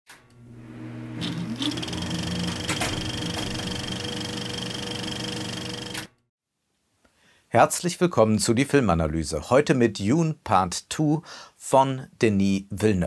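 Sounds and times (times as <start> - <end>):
mechanical hum with fine rattle: 0.1 - 6.1.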